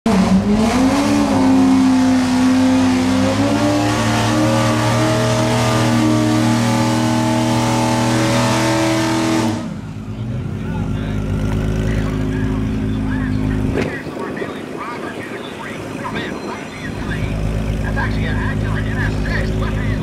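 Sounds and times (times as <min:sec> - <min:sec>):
car engine revving: 0:00.1 - 0:20.0.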